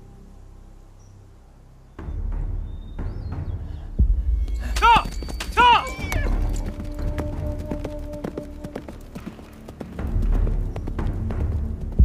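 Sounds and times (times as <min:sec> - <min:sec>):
low rumbling soundtrack: 0:00.0 - 0:12.0
horse hooves clip-clopping: 0:04.5 - 0:12.0.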